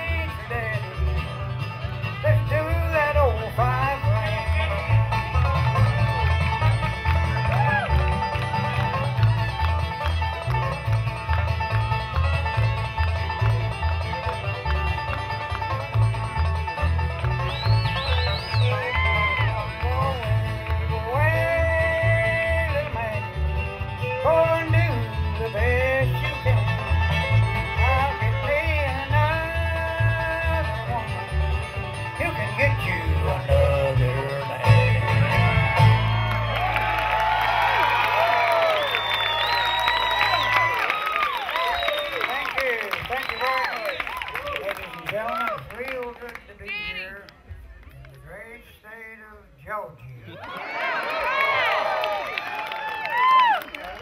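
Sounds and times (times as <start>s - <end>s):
bluegrass band playing: 0.0s - 48.0s
audience applause: 5.4s - 16.0s, 17.0s - 20.9s, 35.3s - 47.0s, 50.3s - 54.0s.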